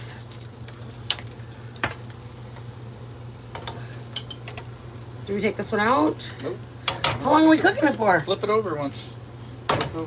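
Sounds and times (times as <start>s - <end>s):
hot oil sizzling in a pan: 0.0s - 10.0s.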